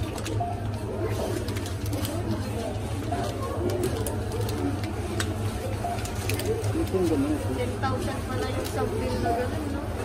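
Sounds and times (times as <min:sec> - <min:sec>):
plastic-wrapped groceries crinkling: 0:00.0 - 0:09.8.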